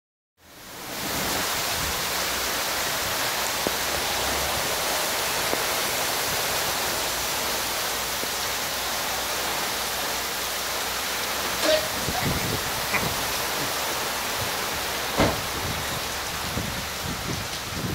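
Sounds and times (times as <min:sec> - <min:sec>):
heavy rain pouring: 0:00.4 - 0:17.9.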